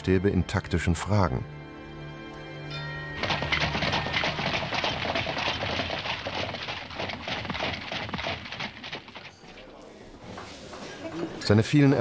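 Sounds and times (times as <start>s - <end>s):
carriage wheels and harness rattling: 3.2s - 9.8s
horse hoofbeats: 3.2s - 9.8s.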